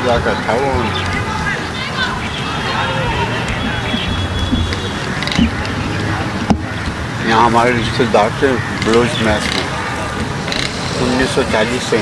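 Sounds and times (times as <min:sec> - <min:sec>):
low rumble of road traffic: 0:00.0 - 0:12.0
murmurs of voice: 0:00.0 - 0:12.0.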